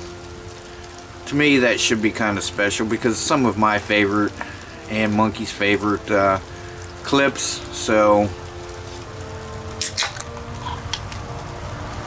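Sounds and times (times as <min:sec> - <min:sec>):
beer can opening crack and hiss: 0:09.7 - 0:11.3.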